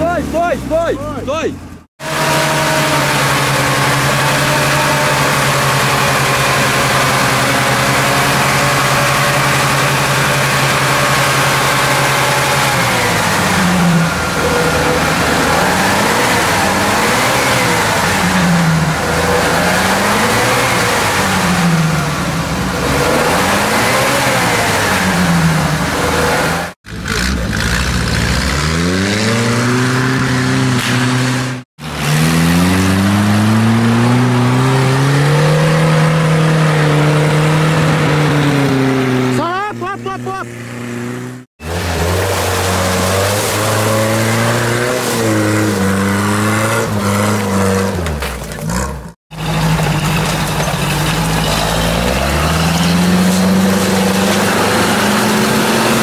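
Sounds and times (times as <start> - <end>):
off-road vehicle engine revving: 0.0 - 56.0.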